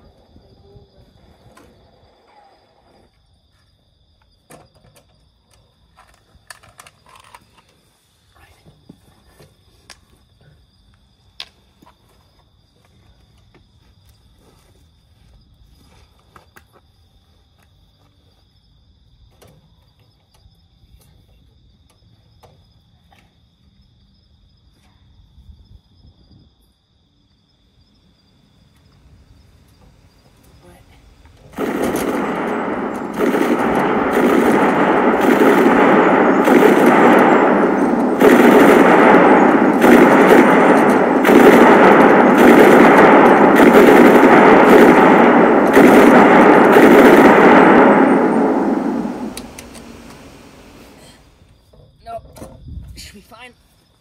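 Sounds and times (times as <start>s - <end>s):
faint high insect chirping: 0.0s - 31.6s, 49.0s - 54.0s
machine-gun fire: 31.5s - 50.9s.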